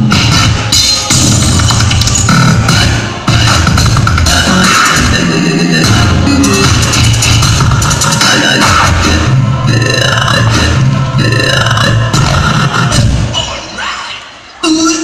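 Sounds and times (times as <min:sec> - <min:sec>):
dance music with heavy bass beat: 0:00.0 - 0:14.6.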